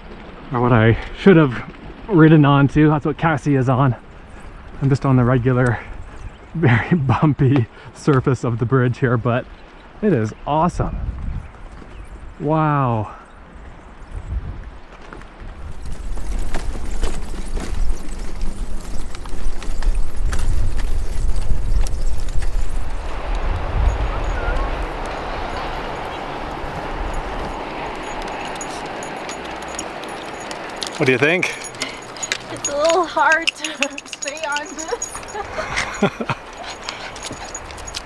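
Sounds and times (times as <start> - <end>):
bicycle rattling over wooden planks: 15.0 - 24.0, 24.6 - 38.0.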